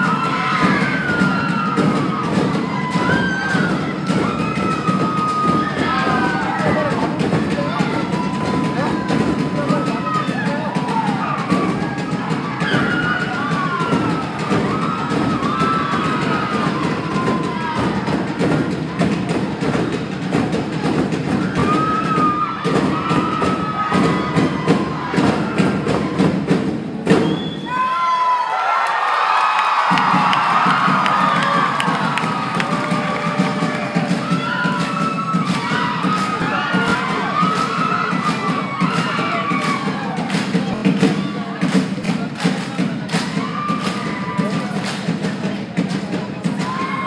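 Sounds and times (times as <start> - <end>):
crowd cheering and whooping: 0.0 - 19.4, 21.3 - 41.7, 43.0 - 44.9, 46.6 - 47.0
steady drumbeat: 0.0 - 27.8, 29.6 - 47.0.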